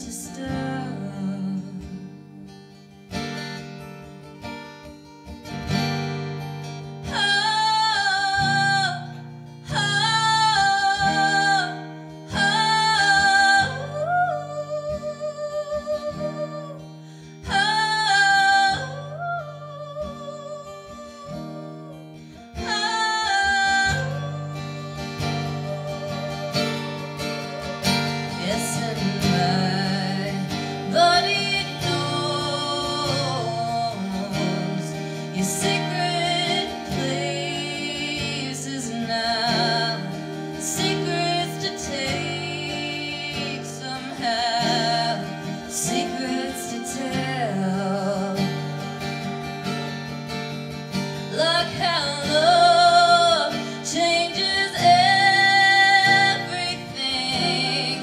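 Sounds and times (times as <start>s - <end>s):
women singing in harmony: 0.0s - 1.9s, 7.1s - 16.8s, 17.4s - 21.9s, 22.6s - 48.8s, 51.3s - 58.0s
acoustic guitar strumming: 0.0s - 58.0s.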